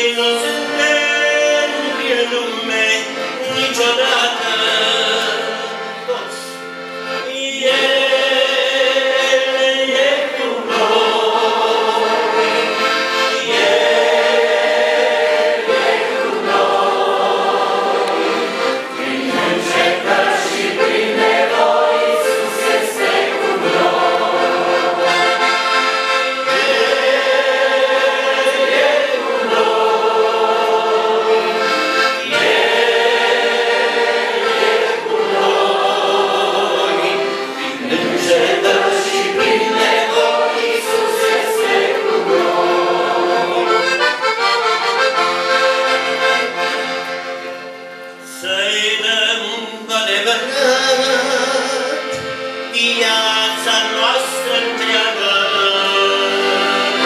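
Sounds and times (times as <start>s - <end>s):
accordion playing sustained chords: 0.0s - 57.0s
voices singing a hymn: 0.0s - 57.0s.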